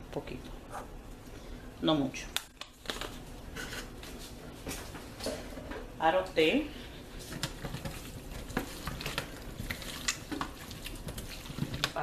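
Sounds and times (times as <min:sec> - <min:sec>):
hands squishing raw meat: 0:07.4 - 0:12.0.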